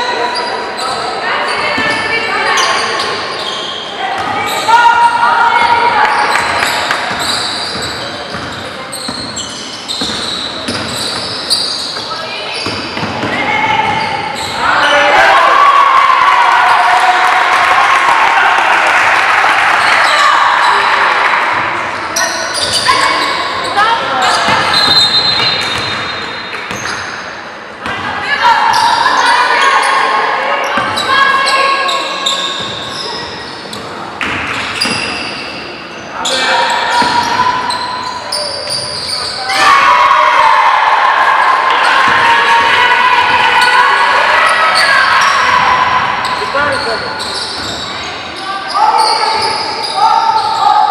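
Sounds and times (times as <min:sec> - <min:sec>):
loud shouting voices: 0:00.0 - 0:07.8, 0:12.0 - 0:25.2, 0:27.8 - 0:33.5, 0:36.2 - 0:50.9
basketball bouncing on court: 0:06.3 - 0:14.2, 0:24.3 - 0:27.1, 0:36.9 - 0:37.4.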